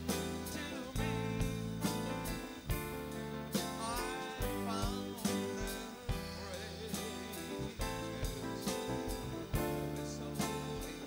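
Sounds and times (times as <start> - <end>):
drum beat: 0.0 - 11.0
live band playing: 0.0 - 11.0
person singing: 0.0 - 11.0.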